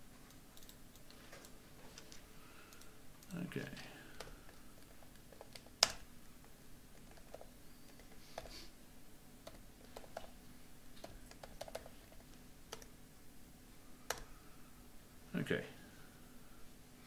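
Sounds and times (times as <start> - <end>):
keyboard typing: 0.3 - 6.1, 6.9 - 8.5, 9.4 - 10.4, 11.0 - 12.9, 14.1 - 14.3.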